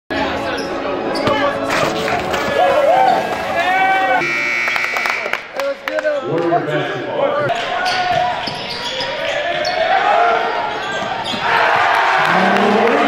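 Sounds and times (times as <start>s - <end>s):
voices echoing in hall: 0.1s - 13.0s
buzzer tone: 4.2s - 5.4s.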